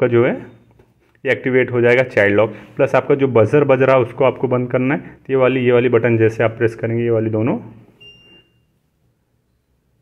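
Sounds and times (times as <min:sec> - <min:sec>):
short high buzzer beep: 0:08.0 - 0:08.8.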